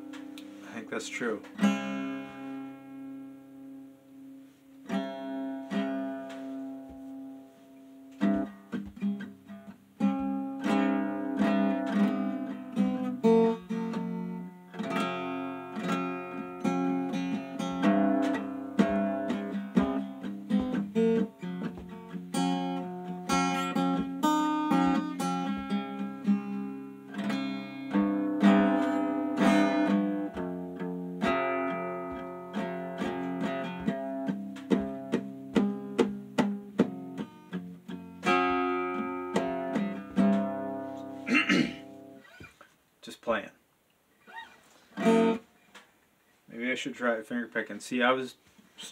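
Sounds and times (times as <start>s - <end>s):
acoustic guitar strumming: 0.0s - 42.6s, 44.2s - 45.6s.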